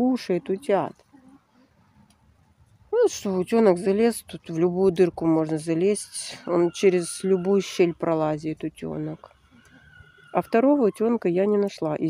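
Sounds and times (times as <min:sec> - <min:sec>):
woman speaking: 0:00.0 - 0:01.0, 0:02.9 - 0:09.3, 0:10.4 - 0:12.0.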